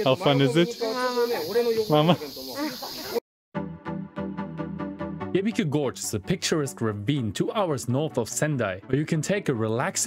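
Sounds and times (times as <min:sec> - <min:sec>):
steady outdoor hiss: 0:00.0 - 0:03.2
background music with steady beat: 0:03.6 - 0:10.0.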